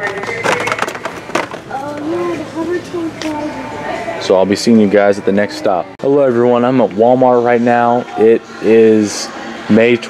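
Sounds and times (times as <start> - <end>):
plastic packs clacking on metal hooks: 0.0 - 1.6.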